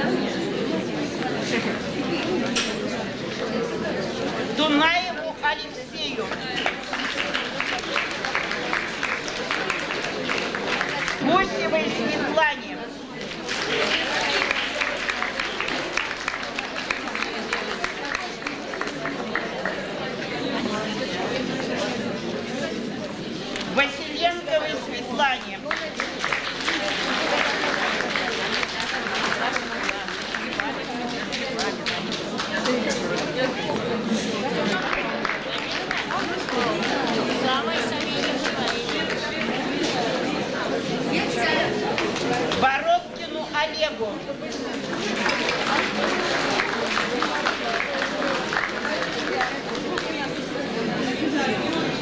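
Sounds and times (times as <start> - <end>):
crowd chatter: 0.0 - 52.0
murmur of audience voices: 0.0 - 52.0
person speaking loudly: 4.6 - 6.5.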